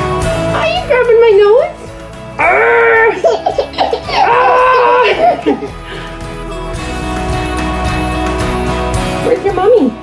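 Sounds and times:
background music: 0:00.0 - 0:10.0
baby laughing and squealing: 0:03.0 - 0:05.7.

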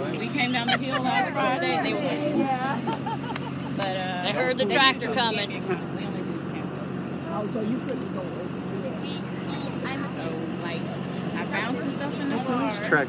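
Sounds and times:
faint voices: 0:00.0 - 0:13.0
tractor engine running: 0:00.0 - 0:13.0.

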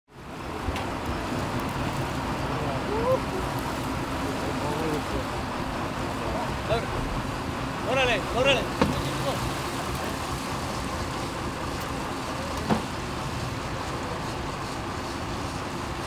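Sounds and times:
boat engine running: 0:00.1 - 0:16.0
wake wash: 0:00.1 - 0:16.0.

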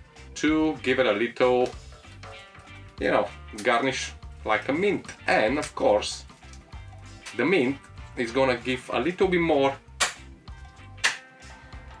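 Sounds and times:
background music: 0:00.0 - 0:12.0
hand slaps: 0:10.0 - 0:10.4, 0:11.0 - 0:11.3.

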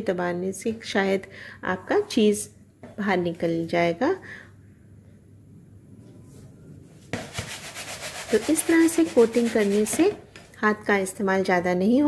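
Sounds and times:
bread crumbs rustling in bowl: 0:07.3 - 0:10.0.

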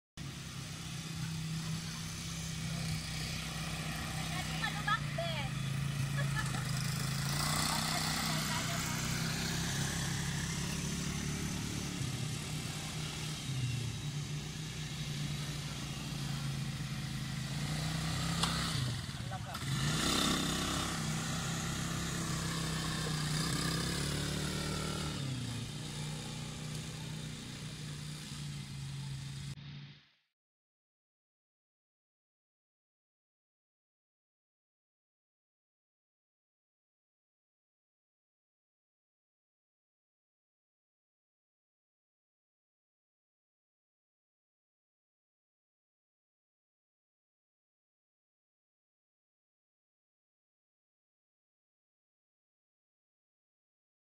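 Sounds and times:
quad bike engine revving: 0:00.2 - 0:30.0.

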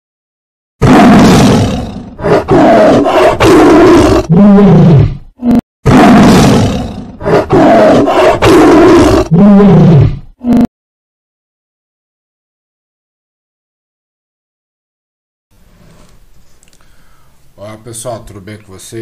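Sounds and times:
tiger roaring and snarling: 0:00.8 - 0:10.7.

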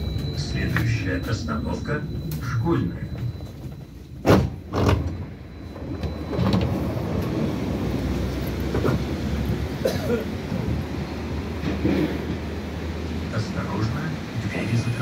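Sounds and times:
tram equipment humming: 0:00.0 - 0:15.0.

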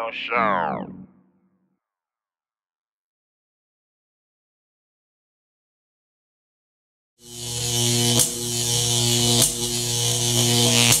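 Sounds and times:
electronic buzzing drone: 0:07.2 - 0:11.0.

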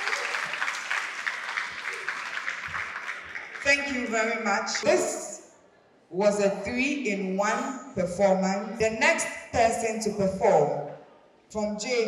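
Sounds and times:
audience applauding: 0:00.0 - 0:04.2.

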